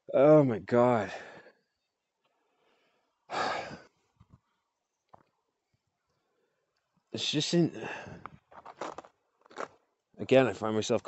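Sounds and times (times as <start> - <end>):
man sighing: 3.3 - 3.8, 7.8 - 8.3.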